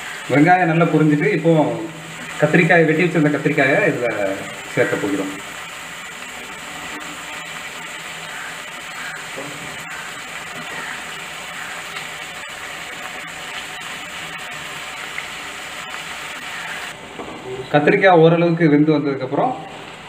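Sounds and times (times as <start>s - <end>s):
vegetables sizzling in hot oil: 0.0s - 17.1s.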